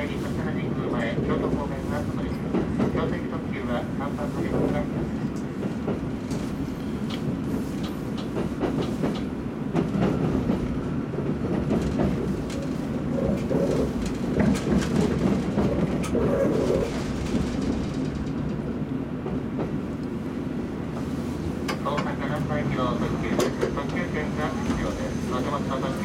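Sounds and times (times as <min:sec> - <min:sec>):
train rumble: 0:00.0 - 0:26.0.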